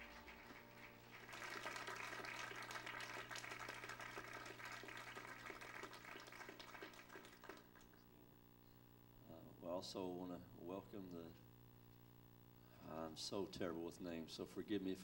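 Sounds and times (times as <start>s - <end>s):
congregation applauding: 0.0s - 8.1s.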